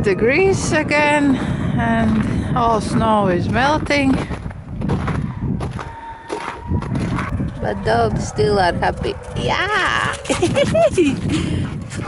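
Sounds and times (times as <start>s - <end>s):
low rumble: 0.0s - 5.9s
footsteps in wet slush: 3.8s - 7.3s.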